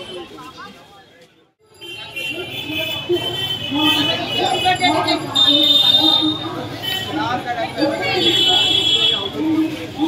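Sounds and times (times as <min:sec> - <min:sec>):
people's voices: 0:00.0 - 0:10.0
road traffic noise: 0:00.0 - 0:10.0.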